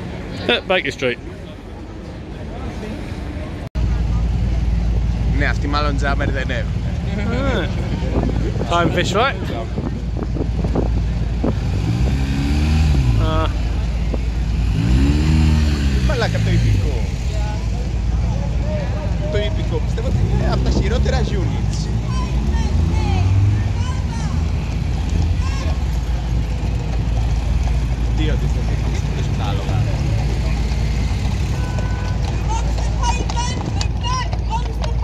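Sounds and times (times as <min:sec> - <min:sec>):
traffic engines rumbling: 0:00.0 - 0:35.0
vehicles pulling away: 0:00.0 - 0:35.0.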